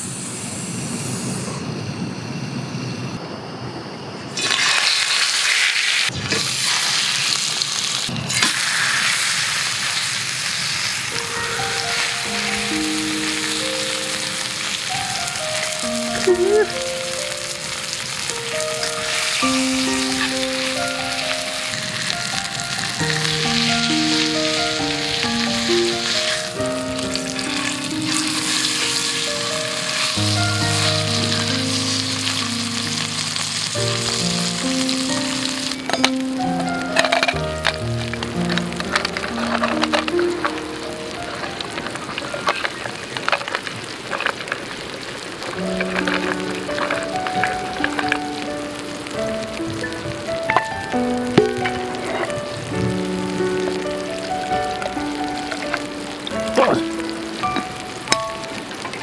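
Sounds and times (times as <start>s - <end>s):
steak sizzling in a frying pan: 4.4s - 59.0s.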